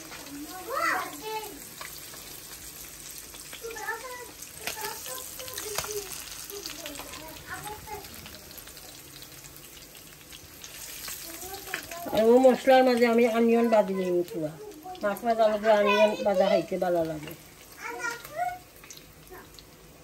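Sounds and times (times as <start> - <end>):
fish sizzling in hot oil: 0.0 - 20.0.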